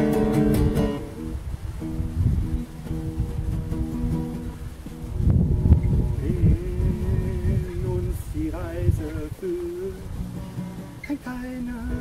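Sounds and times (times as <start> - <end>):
acoustic guitar: 0.0 - 12.0
heavy low rumble: 4.6 - 10.4.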